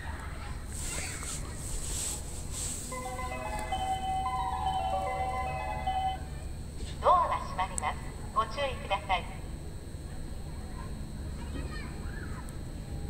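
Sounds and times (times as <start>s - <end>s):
electric train humming: 0.6s - 10.0s
short hissing sounds: 0.7s - 3.1s
electronic chime tune: 3.0s - 6.2s.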